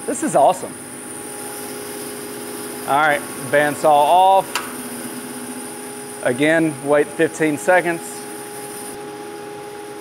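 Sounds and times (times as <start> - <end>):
bandsaw and dust collector hum: 0.0 - 10.0.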